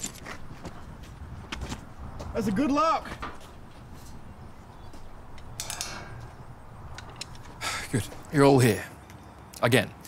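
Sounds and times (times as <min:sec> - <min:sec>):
iron gate latch clinking: 0:05.3 - 0:07.6.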